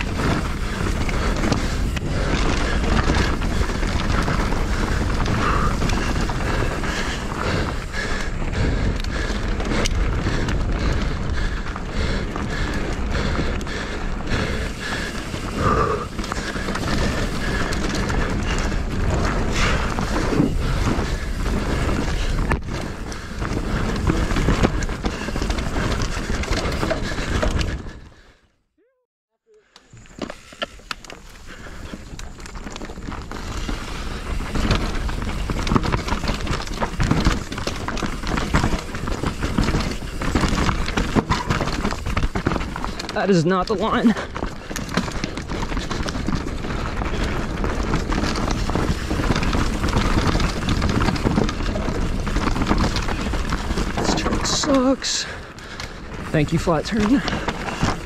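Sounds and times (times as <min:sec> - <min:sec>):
tyre noise: 0:00.0 - 0:28.0, 0:29.8 - 0:58.0
bike rattling and knocking: 0:00.0 - 0:28.2, 0:29.9 - 0:58.0.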